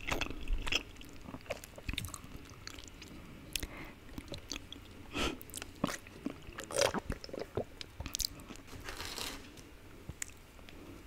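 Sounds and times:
chewing with wet mouth clicks: 0.0 - 8.5.

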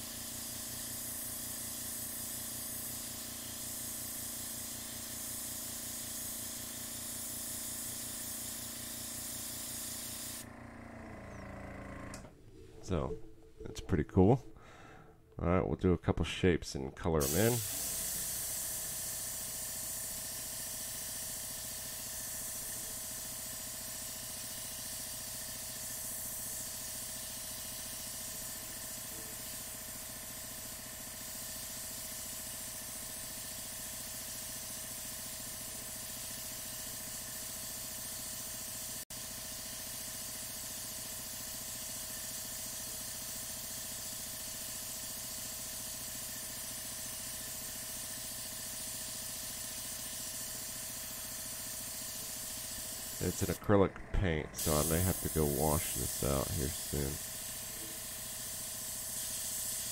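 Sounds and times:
airbrush hissing: 0.0 - 10.5, 17.2 - 53.6, 54.6 - 59.9
steady hum: 50.4 - 58.2.

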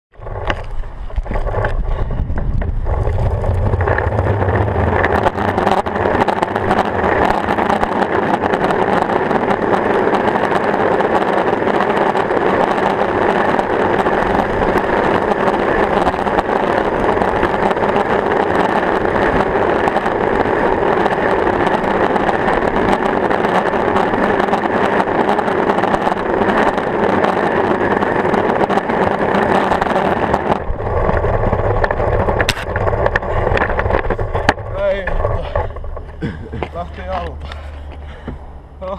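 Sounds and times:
skateboard wheels rolling on asphalt: 0.1 - 38.9.

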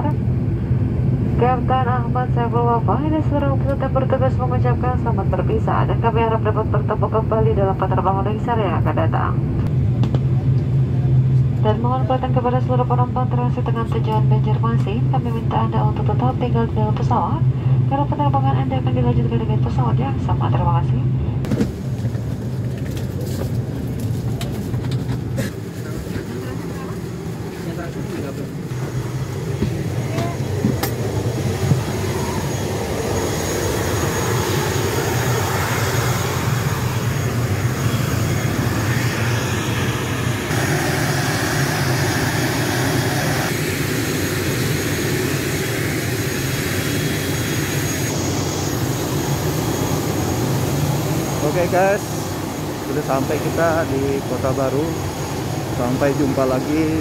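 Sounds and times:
airliner engines droning: 0.0 - 57.0
passengers murmuring: 24.8 - 40.3.

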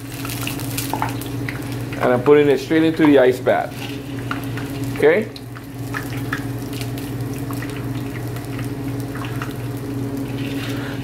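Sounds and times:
meat sizzling in oil: 0.0 - 11.0
steady low hum: 0.0 - 11.0.

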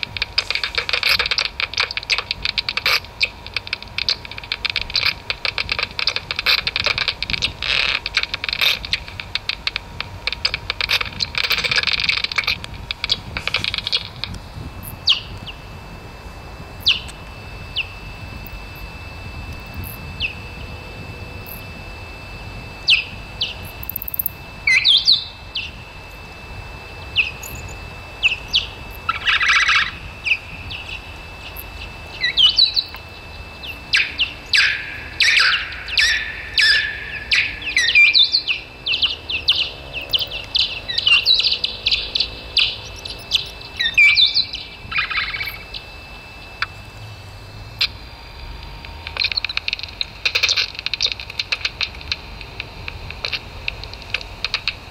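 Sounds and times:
bat detector chirps and clicks: 0.0 - 15.8, 16.5 - 54.9.

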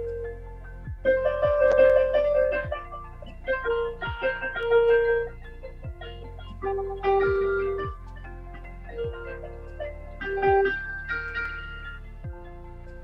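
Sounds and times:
electronic keyboard melody: 0.0 - 13.0.

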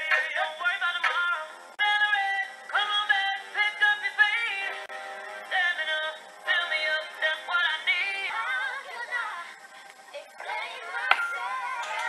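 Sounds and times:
person singing lead vocal: 0.0 - 4.9, 5.5 - 9.6
pop song: 0.0 - 12.0.

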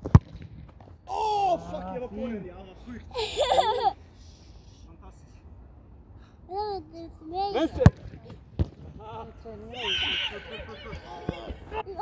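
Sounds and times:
football kicked thump: 7.8 - 8.9.

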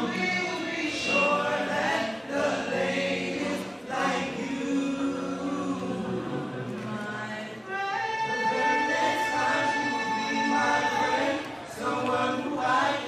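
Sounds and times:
male vocal group singing a cappella: 0.0 - 13.0.

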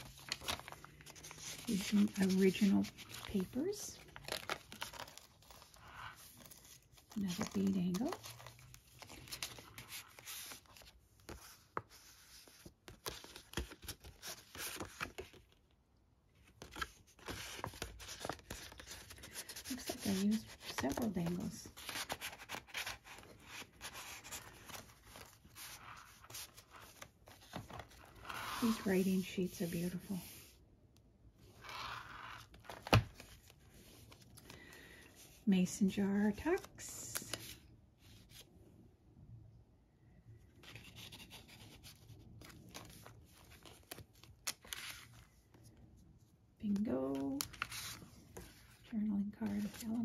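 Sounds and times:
paper pages rustling: 0.0 - 15.6, 16.4 - 30.5, 31.4 - 35.4, 40.6 - 46.0, 46.7 - 50.0.

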